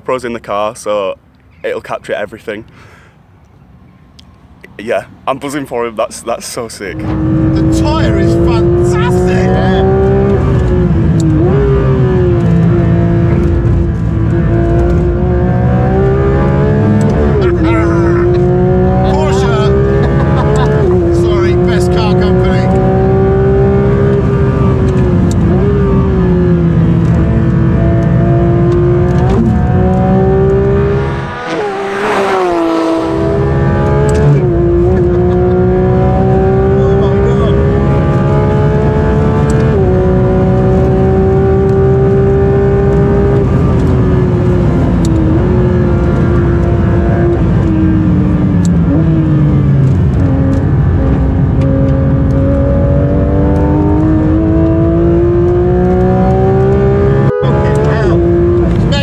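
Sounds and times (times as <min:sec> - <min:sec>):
sports car engine revving: 0:06.8 - 0:59.0.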